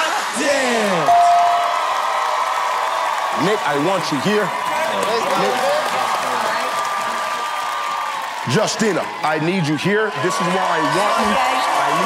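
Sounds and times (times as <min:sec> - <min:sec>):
audience cheering and applauding: 0:00.0 - 0:12.0.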